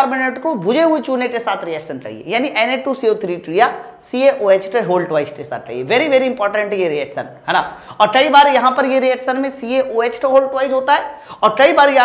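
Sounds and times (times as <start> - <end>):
man lecturing: 0.0 - 12.0.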